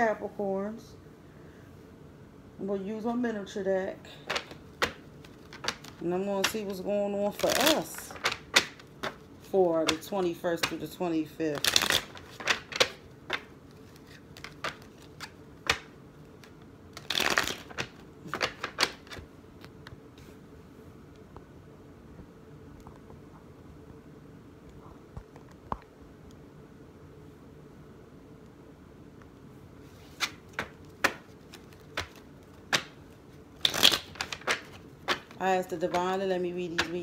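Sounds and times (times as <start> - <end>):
playing cards shuffling: 4.2 - 20.4, 29.8 - 37.0.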